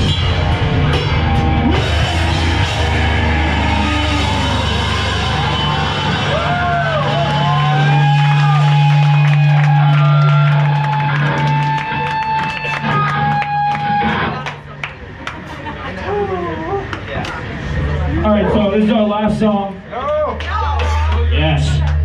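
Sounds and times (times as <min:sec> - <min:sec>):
hardcore band playing live: 0:00.0 - 0:14.7.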